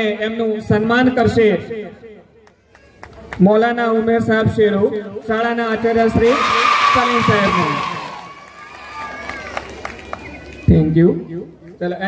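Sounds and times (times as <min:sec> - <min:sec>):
audience applause: 0:06.6 - 0:10.7.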